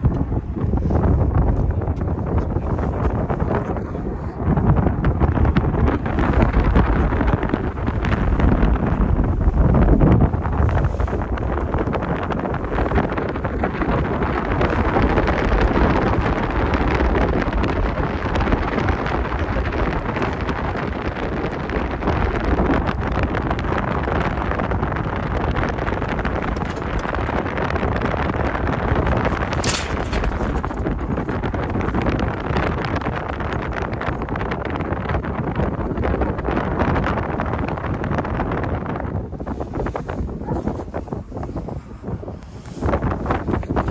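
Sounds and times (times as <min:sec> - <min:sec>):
wind buffeting microphone: 0:00.0 - 0:43.9.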